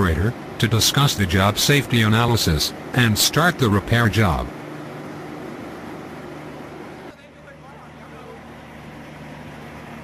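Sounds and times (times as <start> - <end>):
drilling rig machinery drone: 0.0 - 10.0.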